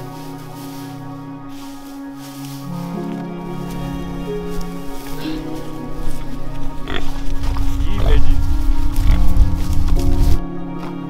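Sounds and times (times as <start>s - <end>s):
background music: 0.0s - 11.0s
pigs grunting loudly: 6.8s - 8.4s.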